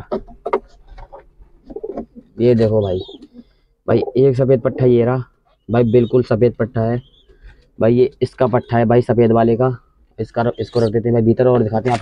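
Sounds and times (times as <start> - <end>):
pigeons cooing: 0.0 - 7.8, 10.4 - 11.0.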